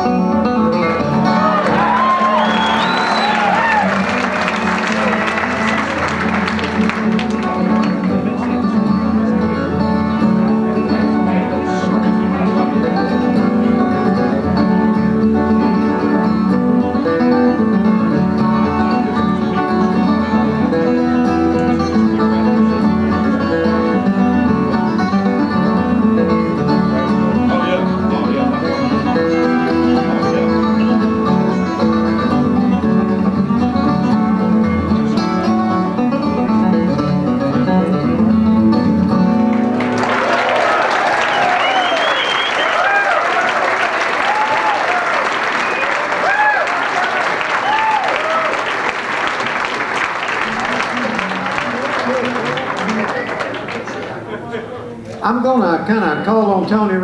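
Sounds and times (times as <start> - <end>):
acoustic guitars playing: 0.0 - 57.0
audience applause and cheering: 1.2 - 9.0, 39.5 - 54.4.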